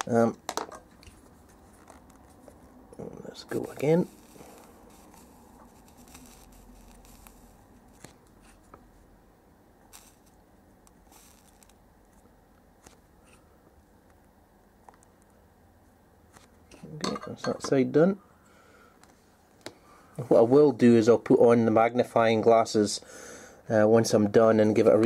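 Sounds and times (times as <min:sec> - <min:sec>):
faint soldering ticks: 0:03.7 - 0:08.1, 0:09.9 - 0:11.8.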